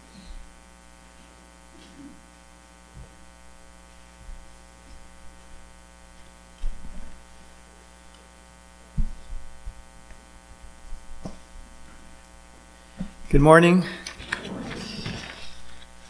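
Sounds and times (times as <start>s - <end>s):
electrical mains hum: 0.0s - 16.0s
thumps on a microphone: 6.6s - 7.2s, 8.9s - 9.8s, 11.0s - 11.6s.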